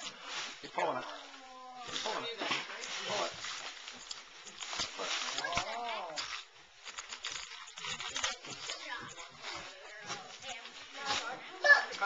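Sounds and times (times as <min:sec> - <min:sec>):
wrapping paper crinkling and tearing: 0:00.0 - 0:11.8
indistinct voices of children and adults: 0:07.8 - 0:12.0.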